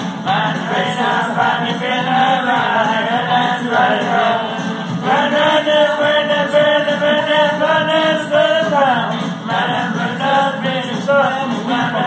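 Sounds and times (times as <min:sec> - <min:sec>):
man singing long held notes: 0:00.3 - 0:12.0.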